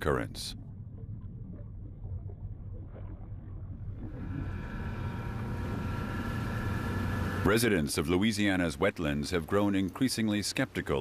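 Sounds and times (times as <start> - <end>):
low engine rumble: 0.0 - 9.6
steady whine: 4.0 - 8.0.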